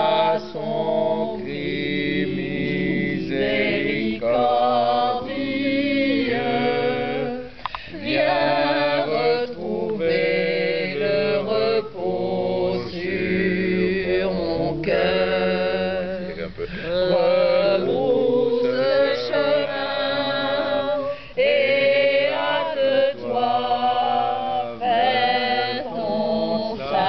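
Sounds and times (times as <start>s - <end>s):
group singing a cappella chorale: 0.0s - 27.0s.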